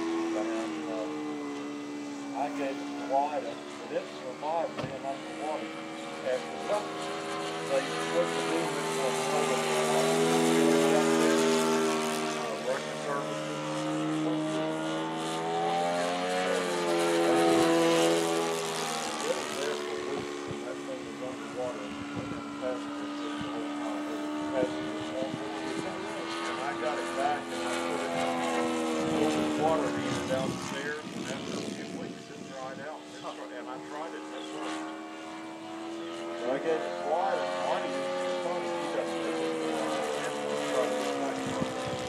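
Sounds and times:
model airplane engine drone: 0.0s - 42.0s.

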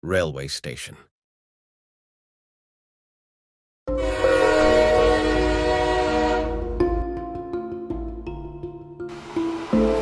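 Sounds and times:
train horn chord: 3.9s - 7.0s.

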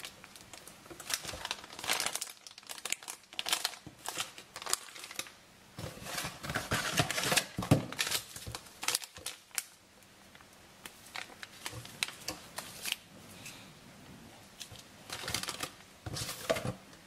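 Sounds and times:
plastic packaging crinkling: 0.0s - 13.1s, 14.6s - 16.8s.

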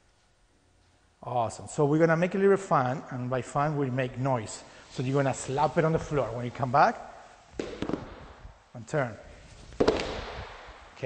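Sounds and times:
rubber tubes slammed on wooden floor: 7.6s - 8.6s, 9.8s - 11.0s.

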